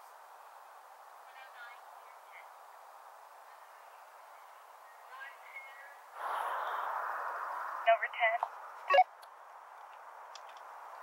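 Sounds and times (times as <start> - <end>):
two-way radio hiss: 1.2 - 8.4.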